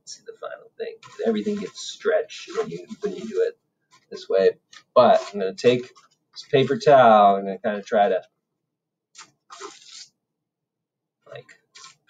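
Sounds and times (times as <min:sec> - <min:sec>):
paper towel rustling: 0:01.0 - 0:04.2, 0:04.8 - 0:06.8.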